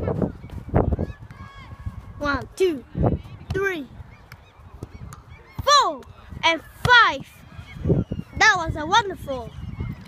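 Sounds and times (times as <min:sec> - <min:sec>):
boy shouting: 0:01.4 - 0:02.9, 0:03.5 - 0:04.0, 0:05.6 - 0:07.4, 0:08.4 - 0:09.5.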